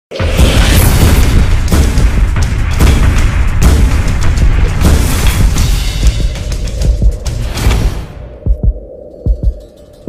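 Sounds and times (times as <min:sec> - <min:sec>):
sharp hit: 0:00.1 - 0:08.3
cinematic music with booming bass: 0:00.1 - 0:10.0.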